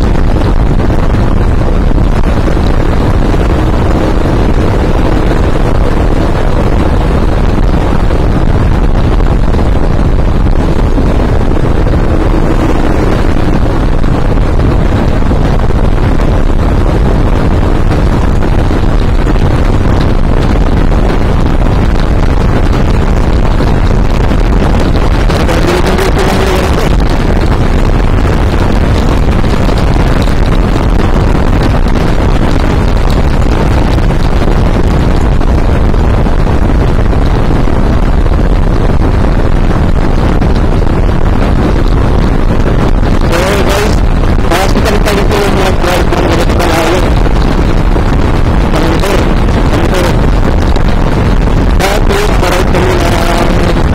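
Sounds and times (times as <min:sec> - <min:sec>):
motorcycle engine running: 0:00.0 - 0:53.9
wind buffeting microphone: 0:00.0 - 0:53.9.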